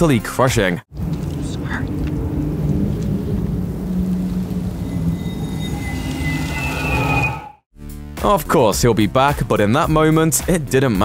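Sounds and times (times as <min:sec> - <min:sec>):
low dark rumbling drone: 0:00.9 - 0:07.6
thin high tones: 0:01.4 - 0:07.7.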